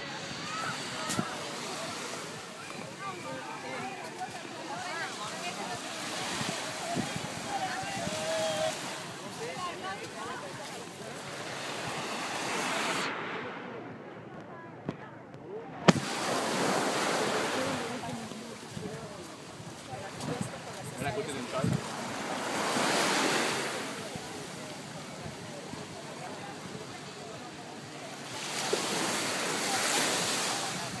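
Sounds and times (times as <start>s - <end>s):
small waves washing on sand: 0.0s - 13.6s, 15.9s - 31.0s
gentle surf hissing: 0.0s - 14.4s, 15.9s - 31.0s
wind on microphone: 6.2s - 9.2s, 17.8s - 22.3s.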